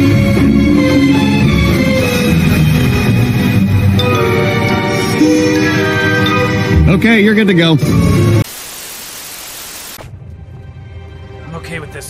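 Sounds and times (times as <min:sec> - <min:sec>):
cartoon background music: 0:00.0 - 0:08.4
white noise hiss: 0:08.4 - 0:10.0.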